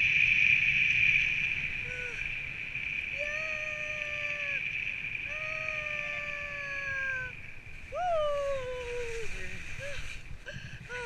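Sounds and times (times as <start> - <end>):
wind rushing: 0.0 - 11.0.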